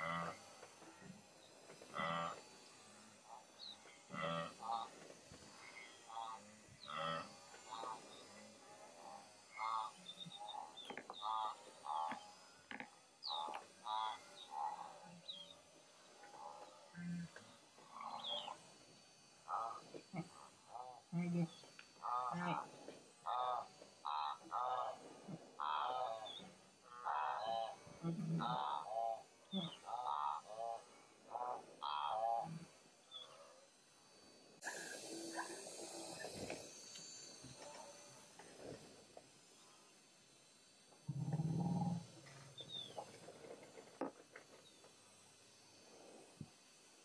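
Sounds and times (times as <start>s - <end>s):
faint bird chirps: 17.9s - 18.6s, 33.1s - 33.5s, 42.2s - 43.2s.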